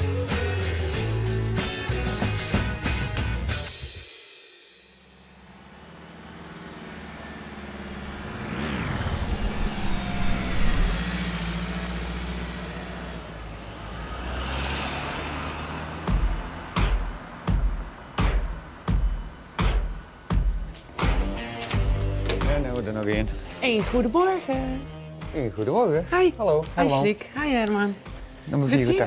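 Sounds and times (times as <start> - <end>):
music with steady beat: 0.0 - 4.8, 16.0 - 26.8
van engine driving past: 5.2 - 18.2
whoosh rising and falling: 6.9 - 13.1.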